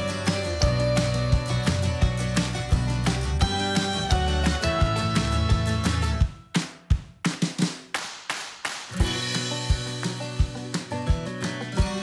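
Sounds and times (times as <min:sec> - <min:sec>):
live band playing: 0:00.0 - 0:06.3.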